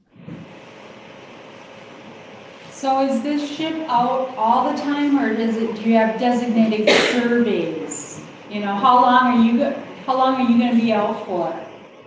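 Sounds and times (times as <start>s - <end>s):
steady microphone hiss: 0.0s - 12.0s.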